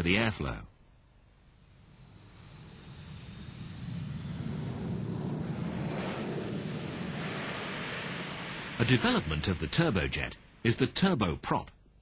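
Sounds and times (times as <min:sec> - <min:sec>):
faint high whine: 0:00.0 - 0:12.0
jet engines roaring: 0:01.4 - 0:10.9.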